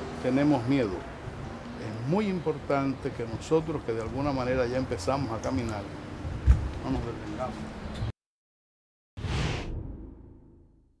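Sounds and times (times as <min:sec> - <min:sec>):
whoosh sound effect: 0:09.2 - 0:10.7
low rumble: 0:09.2 - 0:10.9.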